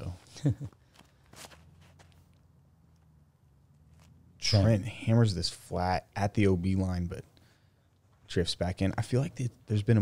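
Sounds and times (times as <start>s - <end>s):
low steady hum: 0.0s - 10.0s
shoe scuff on concrete: 1.0s - 2.2s.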